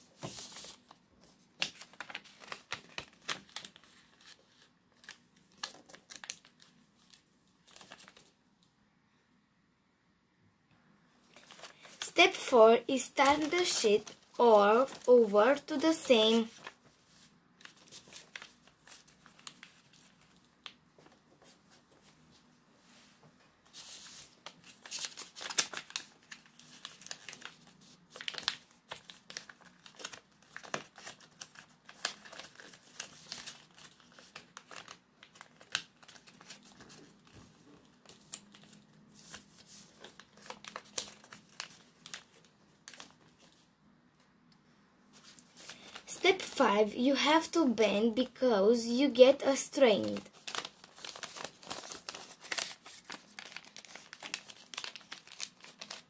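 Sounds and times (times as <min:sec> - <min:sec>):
paper folding and crinkling: 0:00.0 - 0:08.4, 0:11.2 - 0:43.7, 0:45.1 - 0:47.6, 0:49.1 - 0:56.0.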